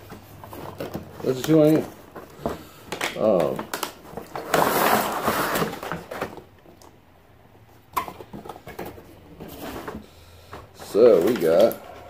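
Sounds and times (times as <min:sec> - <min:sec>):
card and plastic scraping: 0:00.0 - 0:07.0, 0:08.0 - 0:12.0.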